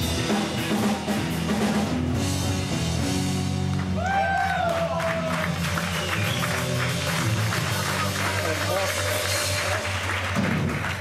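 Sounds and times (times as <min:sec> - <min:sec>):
bass guitar: 0:00.0 - 0:11.0
drum kit: 0:00.0 - 0:11.0
electric guitars: 0:00.0 - 0:11.0.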